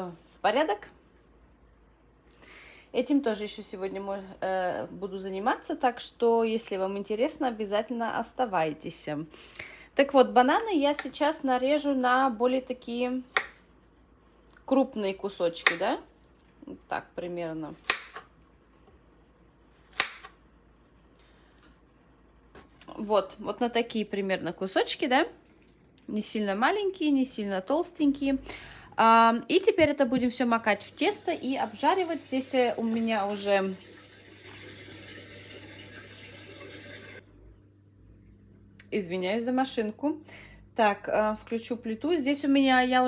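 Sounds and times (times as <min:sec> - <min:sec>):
knife cutting banana on board: 0:17.8 - 0:18.3, 0:19.8 - 0:20.4
dishwasher spraying water: 0:31.3 - 0:37.2.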